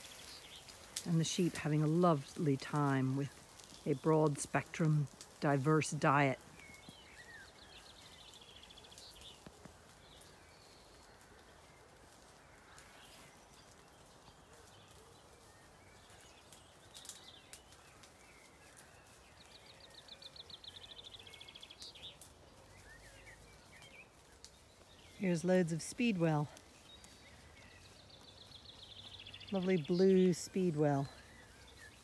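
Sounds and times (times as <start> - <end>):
bird chirps: 6.4 - 32.0.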